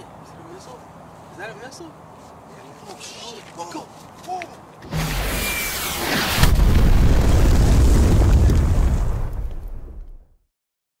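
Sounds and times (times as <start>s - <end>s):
explosion blast: 4.8s - 10.4s
rushing whoosh with whistle: 5.0s - 6.6s.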